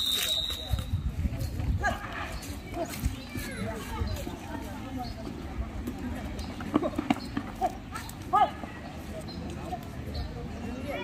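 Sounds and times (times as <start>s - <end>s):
outdoor voices: 0.0s - 11.0s.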